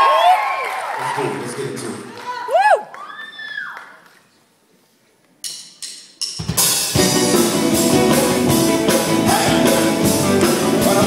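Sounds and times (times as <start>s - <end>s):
live rock band playing: 6.3s - 11.0s.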